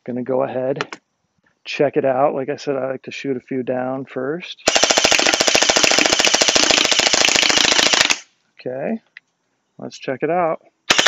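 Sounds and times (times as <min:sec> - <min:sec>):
toy blaster firing full-auto: 0:04.7 - 0:08.3.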